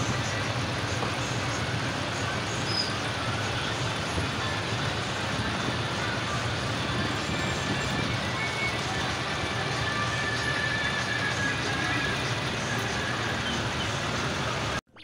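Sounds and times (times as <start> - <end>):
voices: 0.0 - 14.8
tractor engines rumbling: 0.0 - 14.9.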